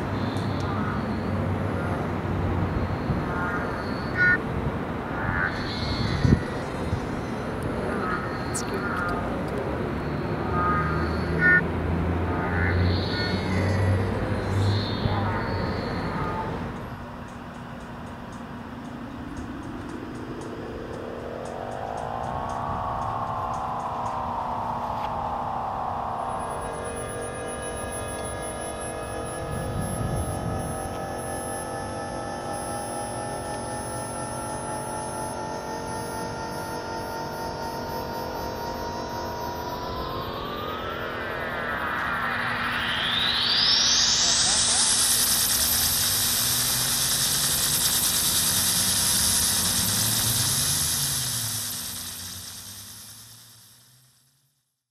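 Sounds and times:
rising synth sweep into hiss: 0.0s - 17.5s, 18.1s - 54.8s
synthesizer drone: 0.0s - 54.8s.

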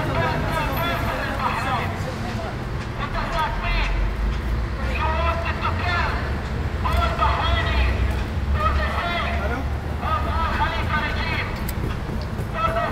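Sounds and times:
people talking: 0.0s - 4.1s
low rumble of traffic: 0.0s - 12.9s.

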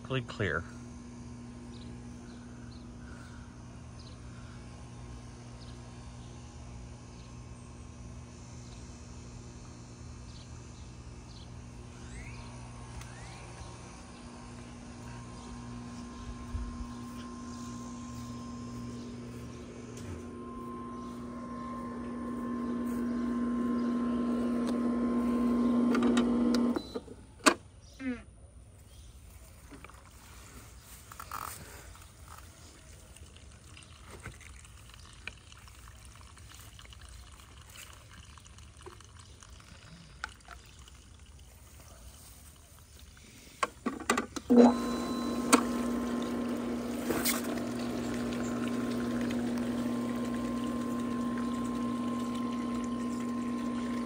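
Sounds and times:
pool pump humming: 0.0s - 28.3s, 29.2s - 54.0s.

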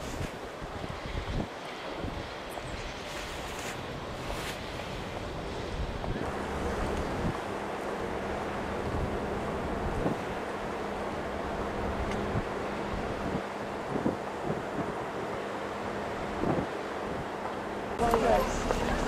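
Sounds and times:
wind on microphone: 0.0s - 7.7s, 8.7s - 10.4s, 11.6s - 15.4s, 16.2s - 17.4s
outdoor background noise: 0.0s - 19.0s.

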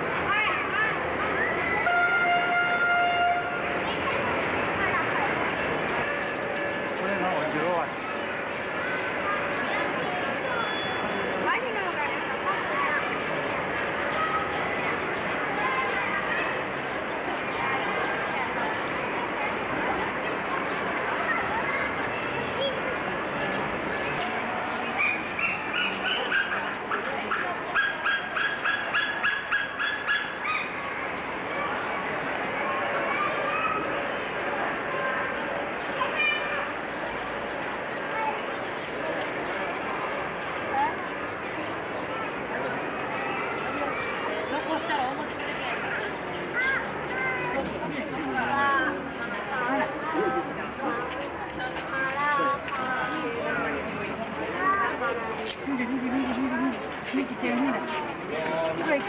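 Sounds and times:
background noise: 0.0s - 59.0s
flat horn-like tone: 1.8s - 3.8s.

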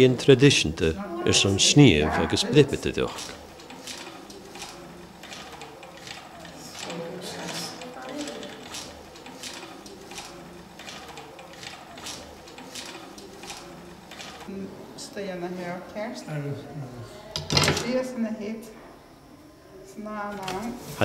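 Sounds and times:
low voices: 0.0s - 14.7s
spinning wheel clicking: 3.2s - 14.5s.

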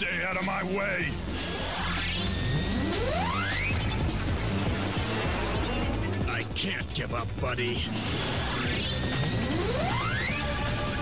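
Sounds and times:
cartoon background music: 0.0s - 11.0s
rising machine whines: 1.1s - 6.7s, 7.7s - 11.0s.

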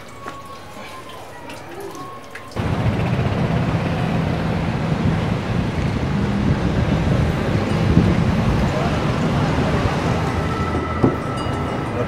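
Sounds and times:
street traffic noise: 0.0s - 12.0s
wind on microphone: 2.6s - 12.0s.

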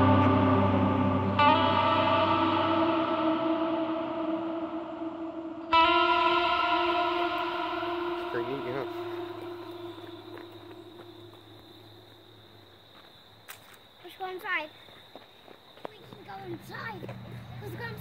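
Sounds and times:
electric guitar chord ringing: 0.0s - 11.6s.

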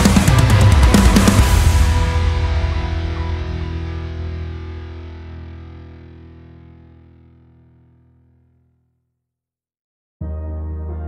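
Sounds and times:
distorted electric guitar chord: 0.0s - 8.1s.

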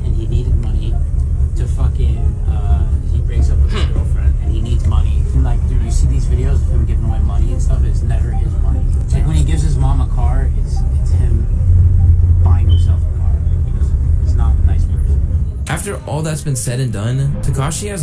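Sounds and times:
motorboat engine rumble: 0.0s - 15.7s
men talking: 0.0s - 18.0s.

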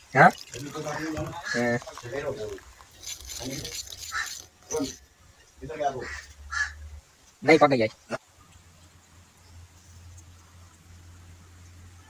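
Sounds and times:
person speaking: 0.1s - 5.0s.

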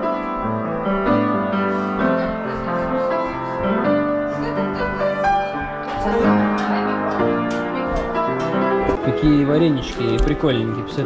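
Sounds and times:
upright piano playing: 0.0s - 11.0s.

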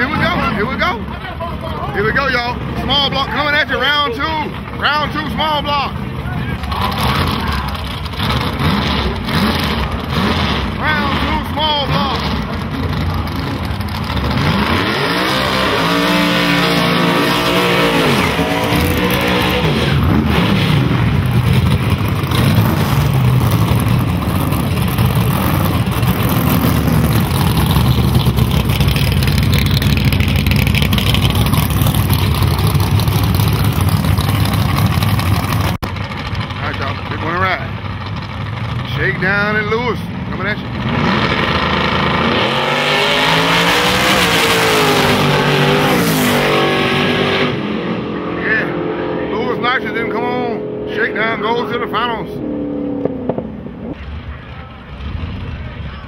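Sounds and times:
voices: 0.0s - 8.0s
drag car burnout: 0.0s - 56.0s
drag cars accelerating: 0.0s - 56.0s.

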